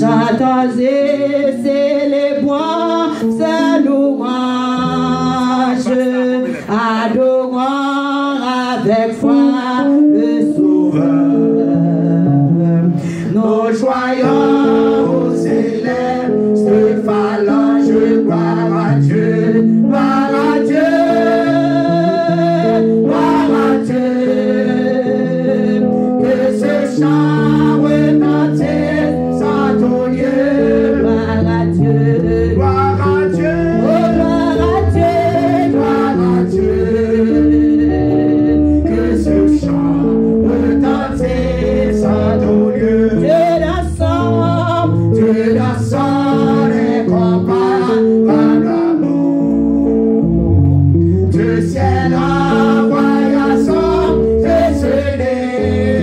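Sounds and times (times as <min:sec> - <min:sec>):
instrumental held chords: 0:00.0 - 0:07.4, 0:08.3 - 0:56.0
woman singing into a microphone: 0:00.0 - 0:49.5
deep bass notes: 0:30.2 - 0:46.3, 0:49.3 - 0:52.8.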